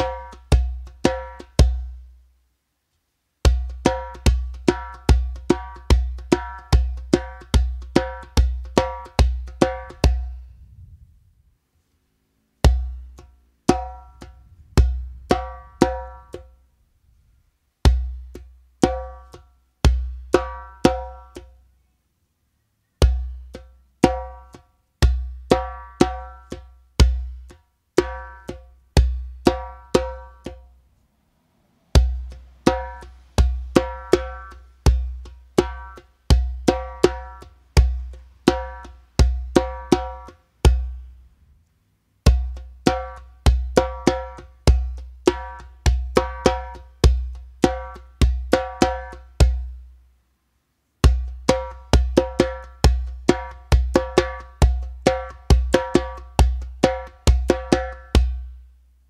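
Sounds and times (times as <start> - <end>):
djembe bass strokes and slaps: 0.0 - 2.0, 3.4 - 11.3, 12.6 - 16.6, 17.8 - 21.6, 23.0 - 30.8, 32.0 - 41.2, 42.2 - 49.8, 51.0 - 58.6.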